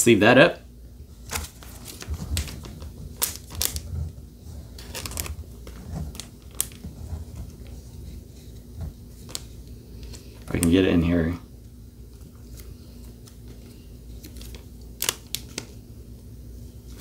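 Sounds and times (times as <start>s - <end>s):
plastic crinkles and rustles: 1.2s - 10.9s, 12.1s - 15.8s.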